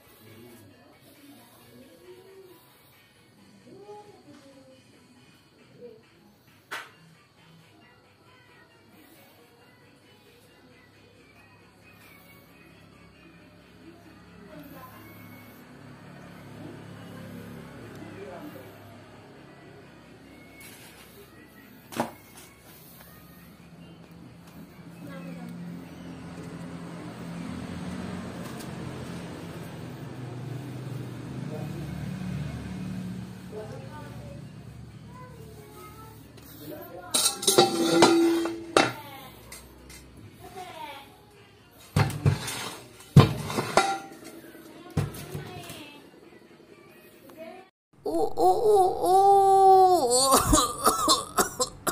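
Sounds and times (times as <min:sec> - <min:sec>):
metal wheel rims clanking: 0:37.2 - 0:39.0.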